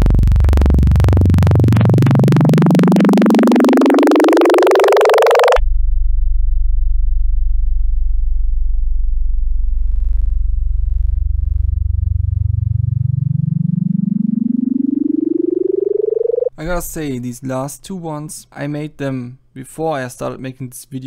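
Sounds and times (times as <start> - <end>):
bright buzzy rising tone: 0.0 - 5.6, 9.1 - 16.5
low buzzing tone gliding upward: 0.0 - 16.5.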